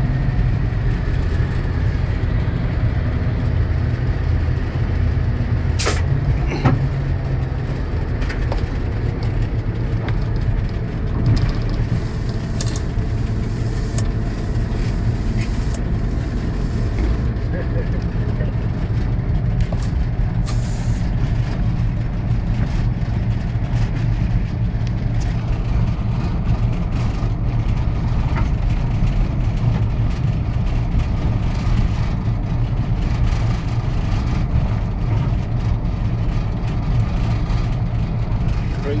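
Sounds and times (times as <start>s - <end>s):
diesel locomotive engine drone: 0.0s - 39.0s
brief hiss: 5.8s - 6.0s, 20.4s - 21.0s.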